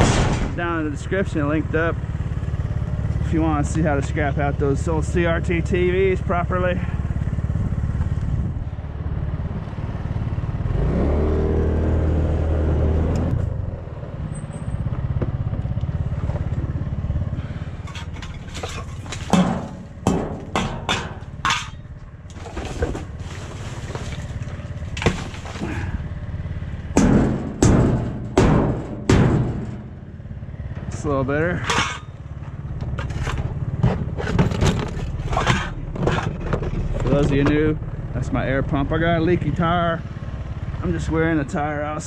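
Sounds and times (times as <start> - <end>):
motorcycle engine running: 0.0 - 11.6, 13.3 - 42.0
metal pot clanking: 17.8 - 21.8, 31.6 - 32.2
trash rummaged in metal dumpster: 17.8 - 26.0, 31.5 - 32.2, 32.9 - 37.3.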